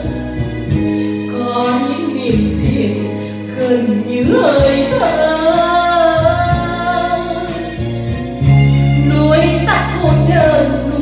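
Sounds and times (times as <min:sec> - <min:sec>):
slow ballad backing music: 0:00.0 - 0:11.0.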